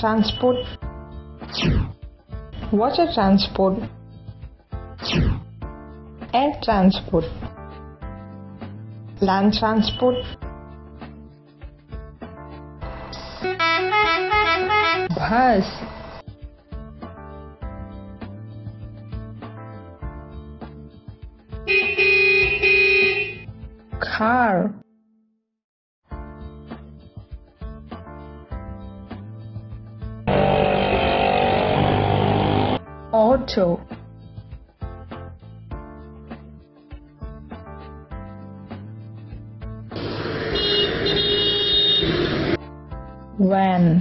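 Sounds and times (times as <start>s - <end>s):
light background music: 0.0s - 24.8s, 26.1s - 31.8s, 32.8s - 44.0s
bus horn honking notes: 13.2s - 15.3s, 21.7s - 23.5s, 30.3s - 32.8s, 40.0s - 42.6s
buzzy vehicle engine sound effect: 30.3s - 32.8s.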